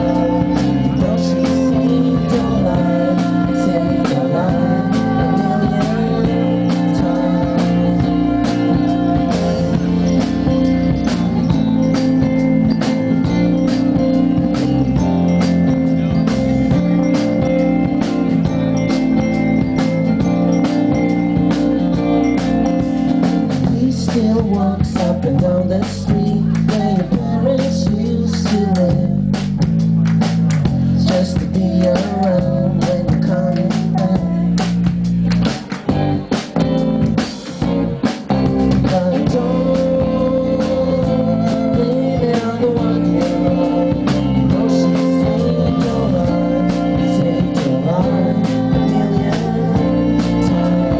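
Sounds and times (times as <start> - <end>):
bass guitar: 0.0 - 50.9
electric guitar: 0.0 - 50.9
pop band playing live: 0.0 - 50.9
steady drum beat: 0.0 - 50.9.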